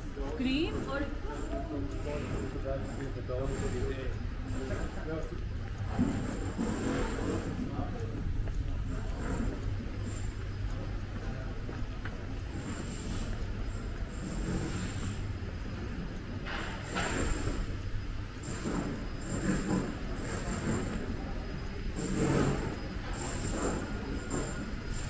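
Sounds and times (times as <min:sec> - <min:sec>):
low street rumble: 0:00.0 - 0:25.0.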